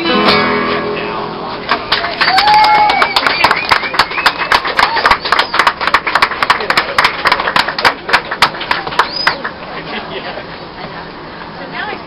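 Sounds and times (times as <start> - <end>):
small group applauding: 1.6 - 9.6
cheering whoops: 2.0 - 5.6.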